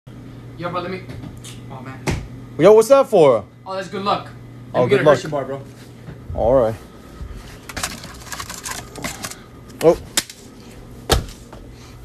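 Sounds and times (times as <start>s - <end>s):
wrappers and cardboard rustling: 7.5s - 9.4s.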